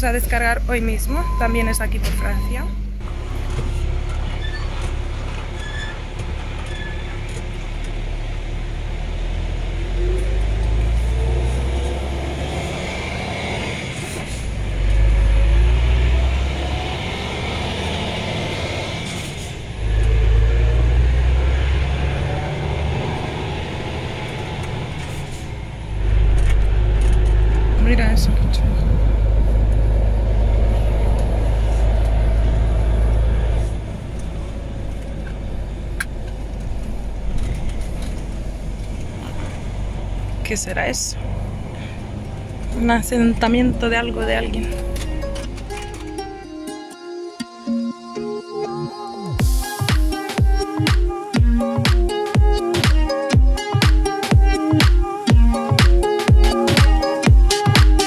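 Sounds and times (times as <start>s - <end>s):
road noise: 0.0s - 58.0s
truck engine: 0.0s - 58.0s.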